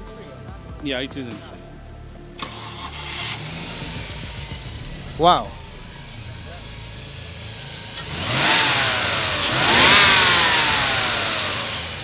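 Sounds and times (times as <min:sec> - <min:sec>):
car engine idling and revving: 0:01.6 - 0:12.0.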